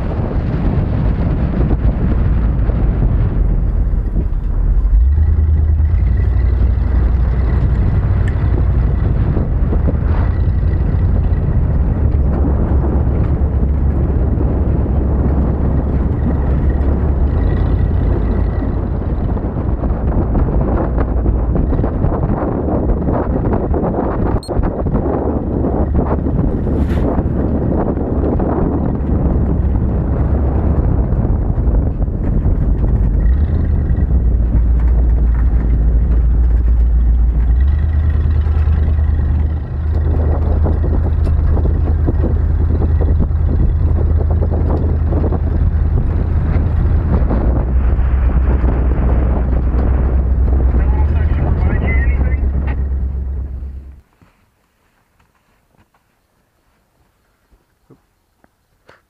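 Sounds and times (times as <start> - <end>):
wind on microphone: 0.0 - 54.1
engine and road rumble: 0.0 - 59.0.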